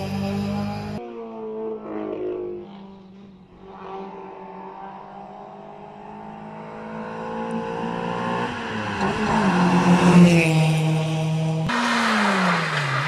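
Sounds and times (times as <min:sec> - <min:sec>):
race car engine revving: 0:00.0 - 0:01.0, 0:01.9 - 0:13.0.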